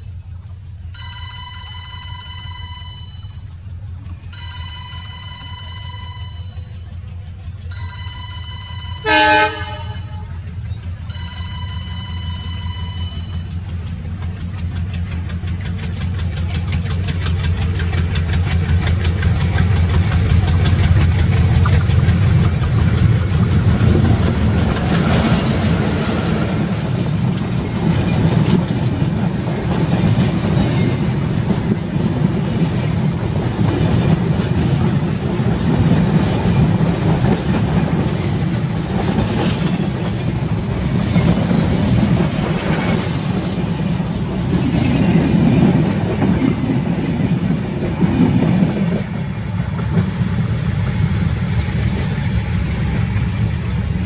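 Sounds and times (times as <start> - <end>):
diesel locomotive rumble: 0.0 - 54.0
train coaches rushing past: 0.0 - 54.0
wheels clickety-clack on rail joints: 0.0 - 54.0.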